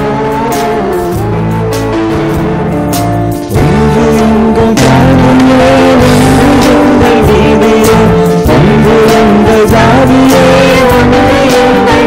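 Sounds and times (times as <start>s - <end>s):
bass guitar: 0.0s - 12.0s
drums: 0.0s - 12.0s.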